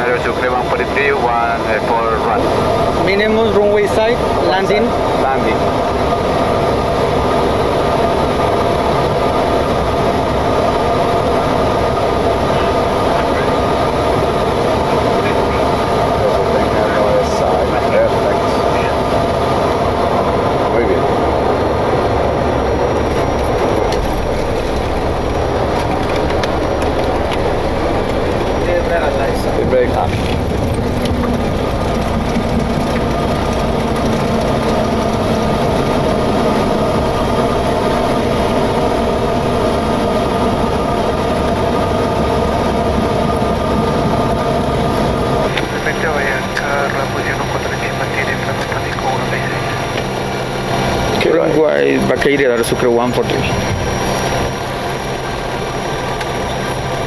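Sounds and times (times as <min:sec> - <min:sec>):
jet engine and airflow noise: 0:00.0 - 0:57.0.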